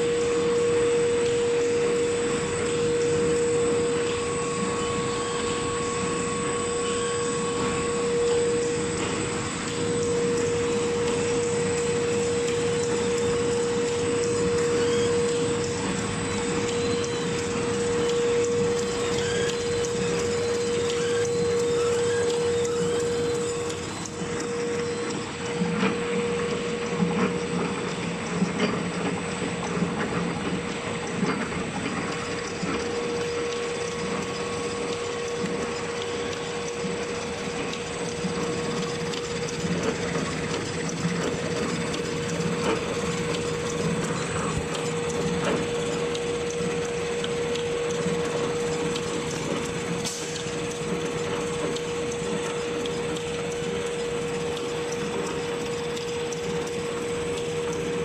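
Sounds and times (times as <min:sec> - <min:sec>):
napkin machine humming: 0:00.0 - 0:58.0
clatter of small ticks: 0:09.7 - 0:25.2, 0:27.1 - 0:58.0.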